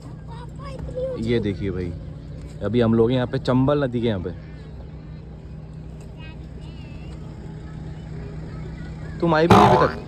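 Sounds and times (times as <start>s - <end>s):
vehicle engine idling: 0.0s - 10.0s
faint voices: 3.3s - 10.0s.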